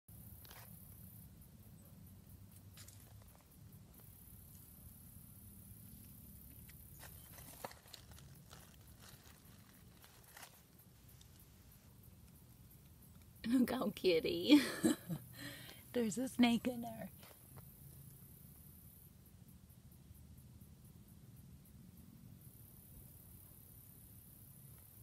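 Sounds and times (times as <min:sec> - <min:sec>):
faint low outdoor rumble: 0:00.1 - 0:25.0.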